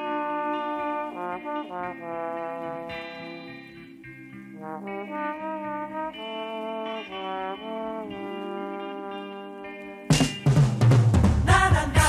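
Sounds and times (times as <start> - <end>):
brass section playing chords: 0.0 - 10.6.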